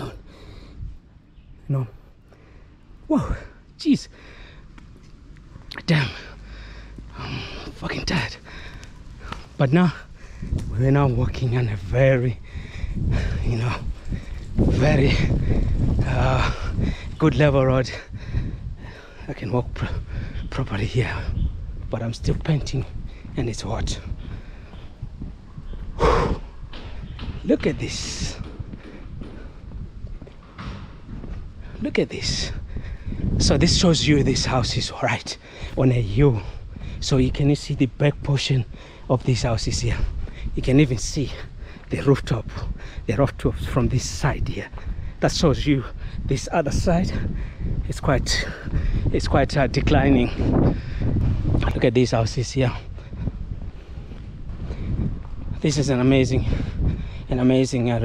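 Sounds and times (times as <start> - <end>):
wind rumbling on microphone: 0.0 - 58.0
man panting: 2.4 - 4.7, 6.1 - 7.8, 8.4 - 10.6, 12.4 - 17.2, 18.0 - 19.3, 19.9 - 20.5, 24.1 - 25.0, 25.8 - 27.2, 32.5 - 33.4, 35.4 - 35.8, 36.4 - 37.0, 38.7 - 39.1, 41.4 - 41.9, 47.2 - 47.8, 48.5 - 49.1, 50.4 - 51.5, 52.9 - 55.2, 56.5 - 57.3.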